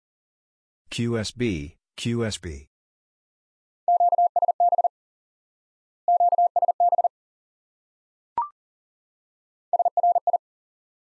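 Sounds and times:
morse code tone: 6.1s - 7.1s.

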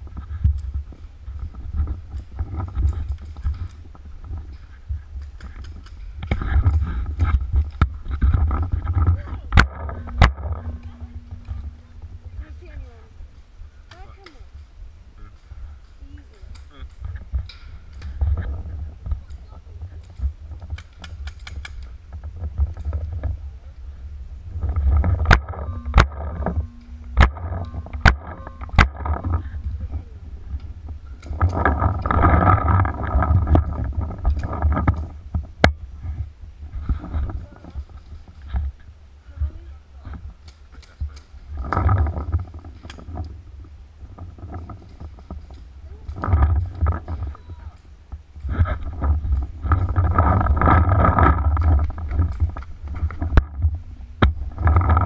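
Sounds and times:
wind rumble: 0.0s - 55.0s.

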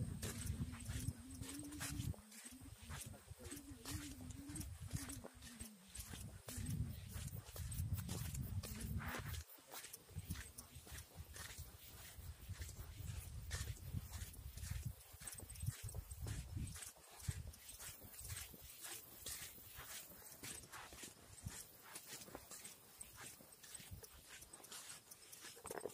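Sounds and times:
footsteps on dirt road: 0.0s - 25.9s.

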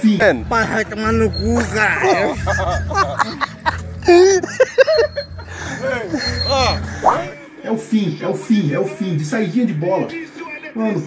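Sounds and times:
man talking: 0.0s - 4.4s, 5.6s - 11.0s
background music with low bass: 0.0s - 7.3s.

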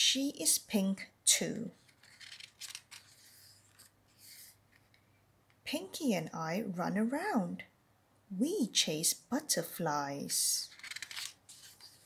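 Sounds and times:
book page turning: 1.8s - 5.0s, 10.7s - 12.0s
hand brushing paper: 2.0s - 4.6s, 11.0s - 12.0s.

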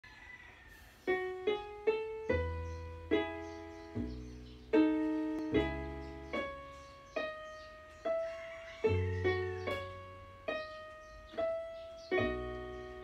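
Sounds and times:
keyboard piano chords: 1.0s - 13.0s
low bass notes: 2.4s - 6.8s.

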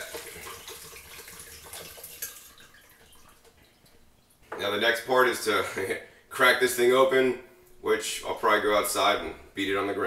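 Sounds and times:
water trickling into a jar: 0.0s - 4.5s.

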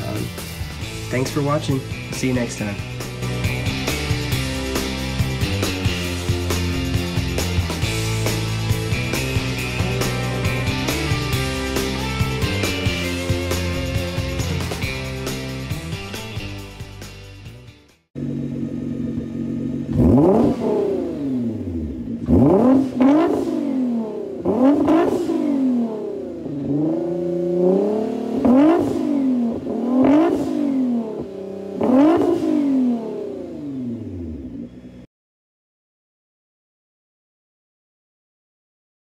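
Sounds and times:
car engine idling: 0.0s - 17.4s, 18.2s - 35.0s
car engine revving: 0.0s - 17.4s, 18.2s - 35.0s.

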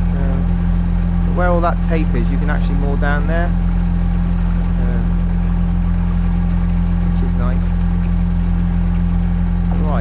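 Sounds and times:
boat engine droning: 0.0s - 10.0s.

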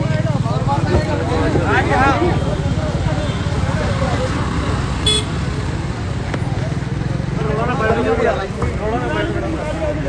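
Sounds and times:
men's voices: 0.0s - 10.0s
road traffic: 0.0s - 10.0s
short vehicle horn toot: 5.0s - 5.4s.

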